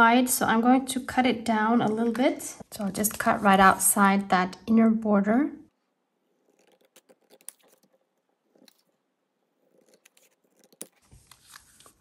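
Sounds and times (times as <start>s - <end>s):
scissors cutting paper: 6.3s - 9.0s, 9.6s - 12.0s.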